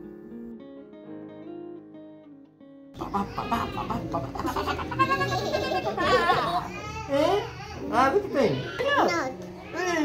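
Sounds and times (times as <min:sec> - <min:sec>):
little girl laughing: 0:03.0 - 0:07.0.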